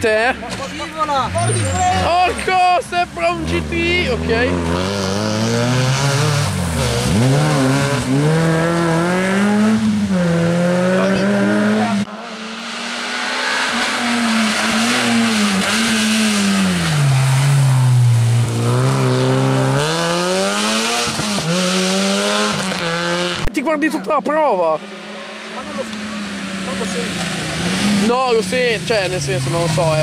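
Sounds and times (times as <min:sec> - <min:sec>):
rally car engines revving: 0:00.0 - 0:30.0.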